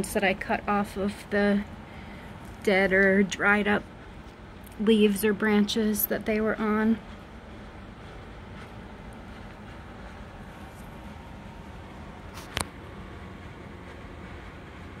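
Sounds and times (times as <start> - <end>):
steady low background noise: 0.0 - 15.0.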